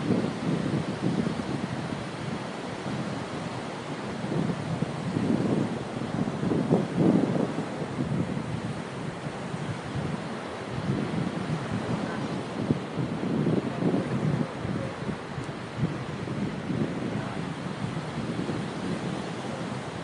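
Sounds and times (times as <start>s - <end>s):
ocean surf breaking: 0.0s - 20.0s
wind gusting across microphone: 0.0s - 20.0s.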